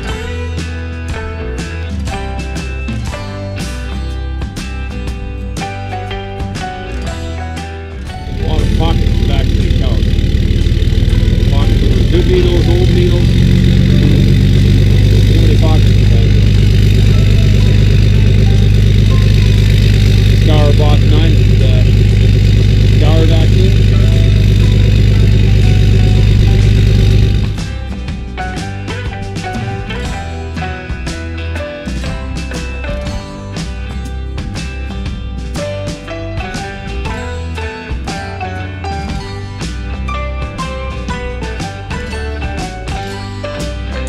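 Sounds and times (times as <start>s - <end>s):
engine idling loudly: 8.0s - 28.0s.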